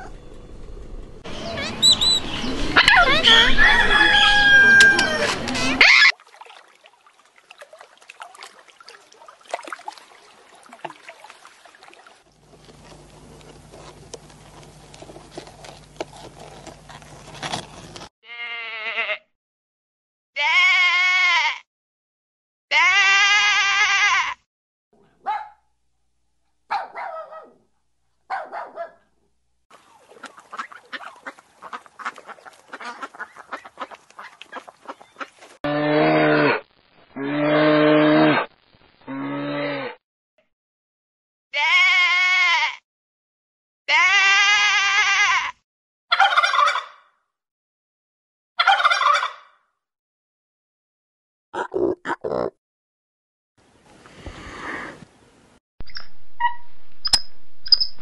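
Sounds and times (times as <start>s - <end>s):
animal bleating: 18.2s - 19.3s, 20.4s - 21.6s, 22.7s - 24.4s, 41.6s - 42.8s, 43.9s - 45.6s.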